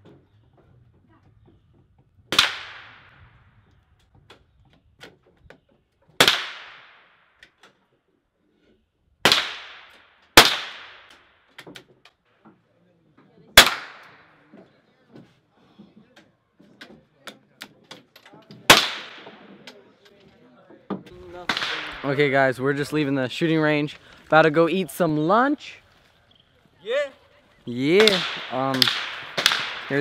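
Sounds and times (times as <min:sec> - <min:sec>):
rifle shots: 0:02.3 - 0:03.2, 0:06.2 - 0:07.1, 0:09.2 - 0:11.2, 0:13.6 - 0:14.2, 0:18.7 - 0:19.5, 0:21.4 - 0:22.2, 0:27.9 - 0:30.0.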